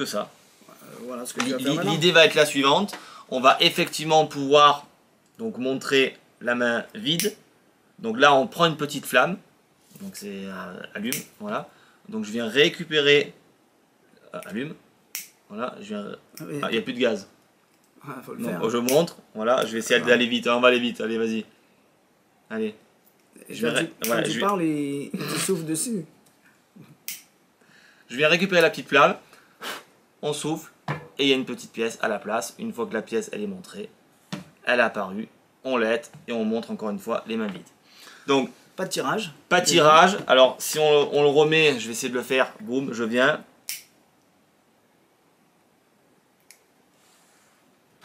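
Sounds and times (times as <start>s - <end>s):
lighter click: 43.7s - 43.9s
faint sharp click: 46.4s - 46.7s.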